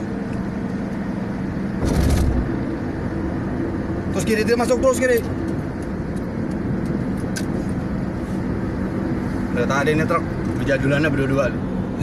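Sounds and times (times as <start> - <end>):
road and engine noise: 0.0 - 12.0.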